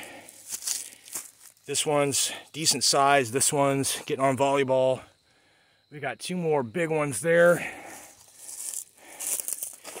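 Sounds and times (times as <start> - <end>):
footsteps through dry leaves: 0.0 - 1.6, 7.8 - 10.0.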